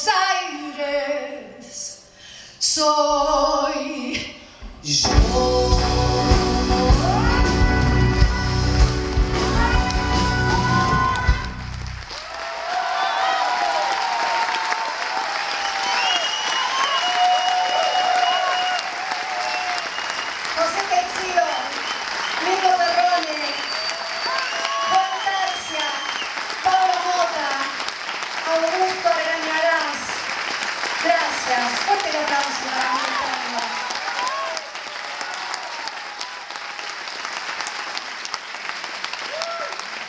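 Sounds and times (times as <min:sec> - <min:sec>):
band music: 0:04.6 - 0:12.1
audience applauding: 0:06.8 - 0:40.0.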